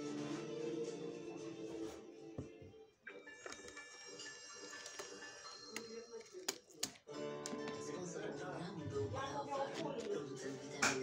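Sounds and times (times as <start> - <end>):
faint television music: 0.0 - 11.0.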